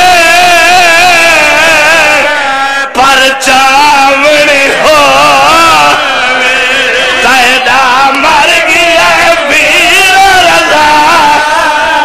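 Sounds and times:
man chanting into a microphone: 0.0s - 12.0s.

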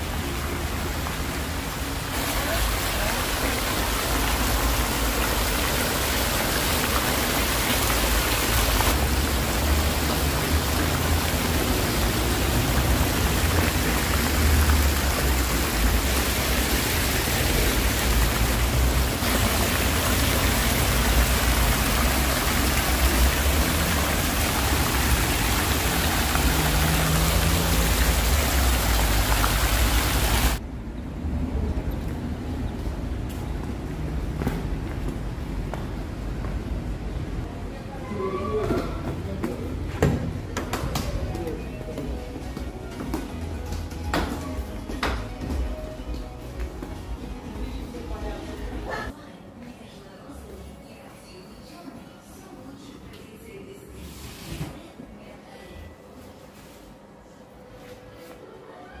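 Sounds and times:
fountain water splashing: 0.0s - 30.6s.

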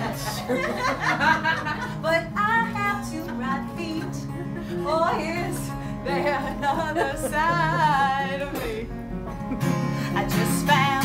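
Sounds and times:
acoustic guitar low notes: 0.0s - 11.0s.

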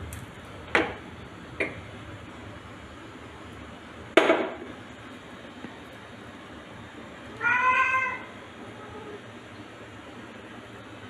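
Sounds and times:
cat meowing: 7.4s - 9.2s.

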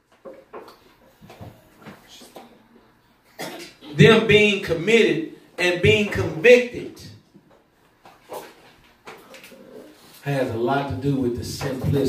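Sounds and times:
short cough: 3.4s - 4.0s
man speaking: 3.8s - 7.2s, 10.2s - 12.0s.

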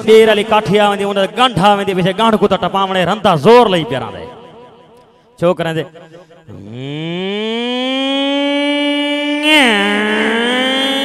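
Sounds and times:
man's drawn-out vocal sound: 6.4s - 11.0s.

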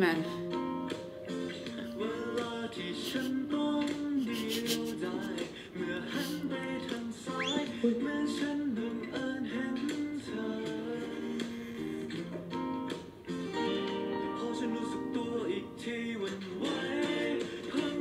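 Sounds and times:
strummed acoustic guitar: 0.0s - 18.0s
person singing: 1.4s - 12.4s, 13.5s - 18.0s.

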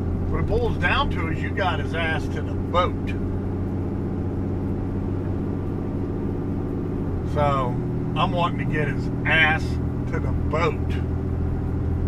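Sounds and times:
truck engine and road noise: 0.0s - 12.0s.

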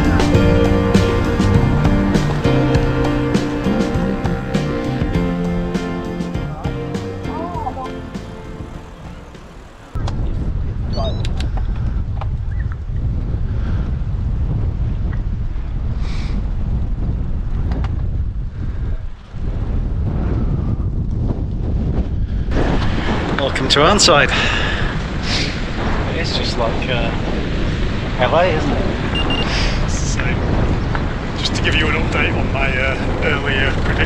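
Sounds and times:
background music: 0.0s - 10.0s
wind buffeting microphone: 0.0s - 34.0s.

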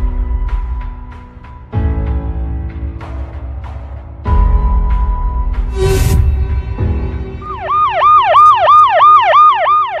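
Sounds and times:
swooping siren sound effect: 7.4s - 10.0s.

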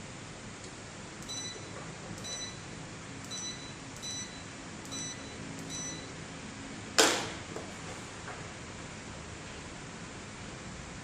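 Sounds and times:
short high beeps: 1.2s - 2.7s, 3.3s - 6.2s.

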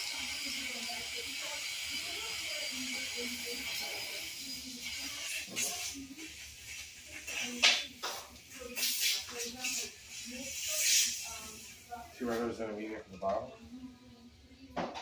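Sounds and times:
hiss: 0.0s - 12.0s
quiet indistinct talking: 0.0s - 15.0s.

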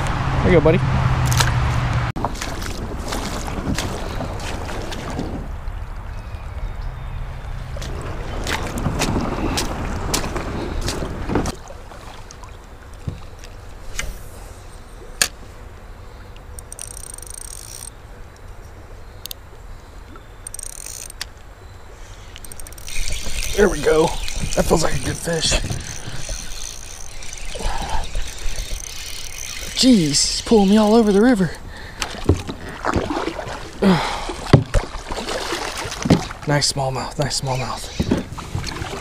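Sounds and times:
water splashing against kayak: 2.2s - 6.0s, 7.6s - 14.6s, 22.4s - 39.0s
fishing reel clicks and taps: 16.6s - 17.9s, 20.4s - 21.3s, 22.3s - 29.9s.

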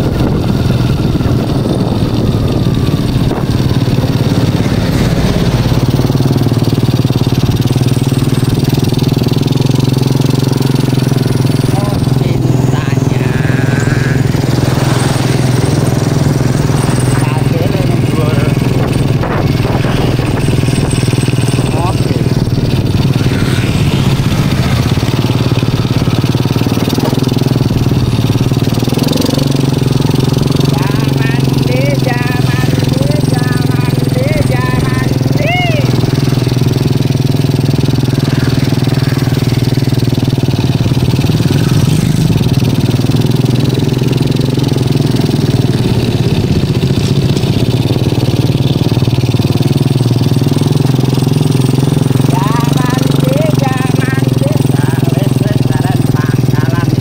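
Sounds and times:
small motorcycle engine running: 0.0s - 57.0s.

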